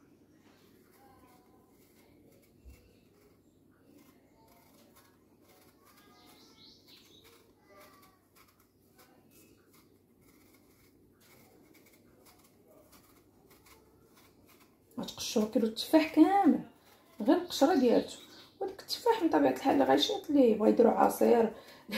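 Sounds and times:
knife scraping apple skin: 0:00.6 - 0:21.9.

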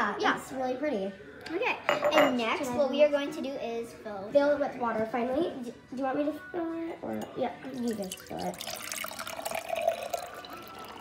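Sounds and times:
water pouring into glass jar: 0:07.7 - 0:11.0.

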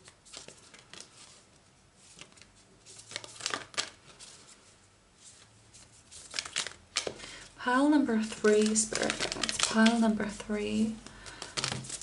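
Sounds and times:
cards being shuffled: 0:00.0 - 0:07.4, 0:08.2 - 0:10.1, 0:11.0 - 0:12.0.

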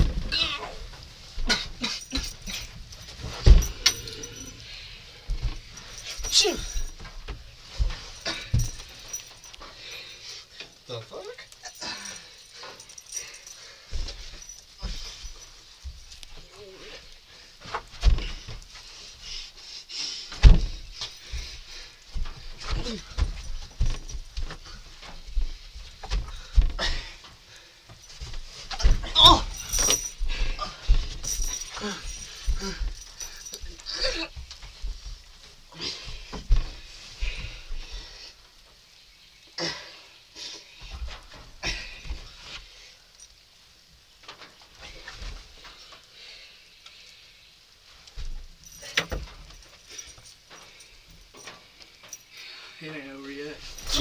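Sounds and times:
wrestlers scuffling on wooden floor: 0:00.0 - 0:19.6, 0:20.2 - 0:38.8, 0:53.5 - 0:54.0
people grunting and yelling: 0:00.3 - 0:00.8, 0:06.2 - 0:06.8, 0:28.8 - 0:30.9
bodies thudding on floor: 0:01.4 - 0:04.4, 0:05.3 - 0:09.4, 0:17.8 - 0:18.6, 0:20.4 - 0:24.7, 0:28.1 - 0:35.1.

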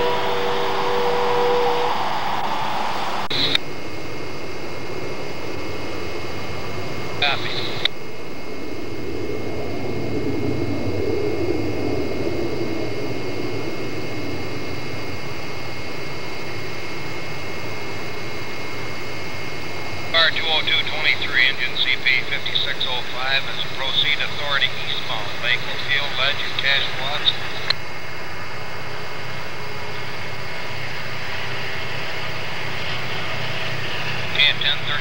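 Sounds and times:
distant diesel locomotive drone: 0:00.0 - 0:35.0.

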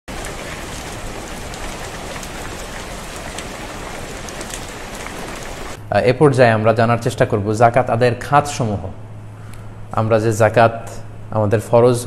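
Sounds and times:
waterfall splashing onto rocks: 0:00.0 - 0:05.8.

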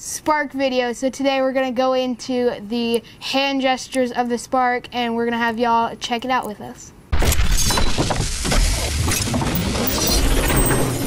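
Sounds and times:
crash-like sound effect: 0:07.1 - 0:11.0.

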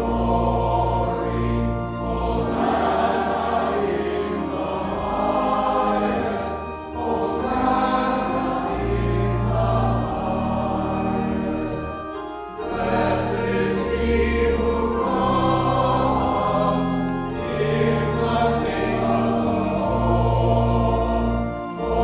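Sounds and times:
choir singing: 0:00.0 - 0:22.0
low organ notes: 0:00.0 - 0:22.0.

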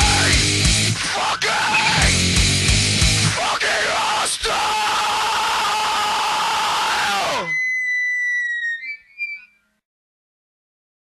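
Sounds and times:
high squealing guitar tone: 0:00.0 - 0:03.3, 0:06.1 - 0:09.8
thrash metal band: 0:00.0 - 0:07.6.

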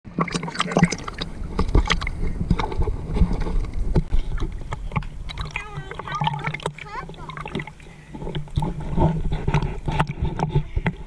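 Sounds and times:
water sloshing and splashing: 0:00.0 - 0:11.0
water drips: 0:04.4 - 0:08.6.

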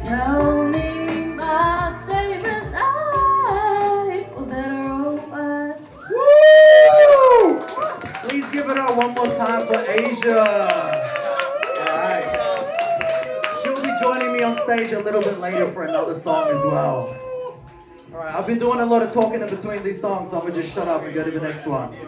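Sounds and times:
woman singing into microphone: 0:00.0 - 0:06.1
loud whoop: 0:06.0 - 0:08.2, 0:09.0 - 0:14.9
crowd clapping: 0:06.8 - 0:15.9, 0:18.7 - 0:20.1.

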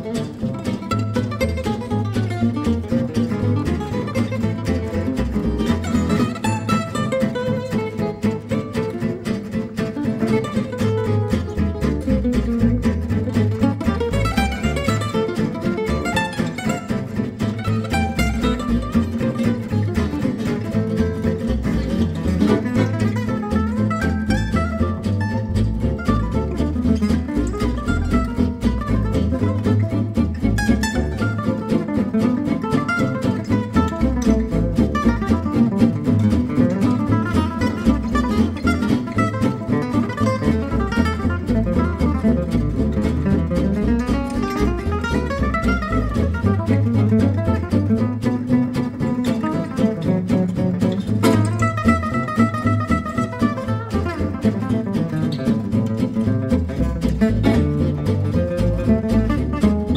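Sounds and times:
acoustic guitar rhythm: 0:00.0 - 0:59.9.

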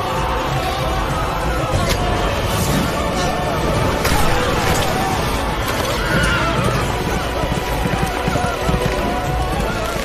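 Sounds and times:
galloping hoofbeats: 0:05.0 - 0:10.0.

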